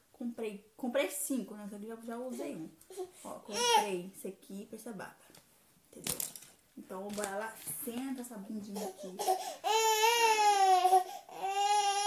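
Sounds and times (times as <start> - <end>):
toddler crying: 2.9 - 3.9, 9.0 - 12.0.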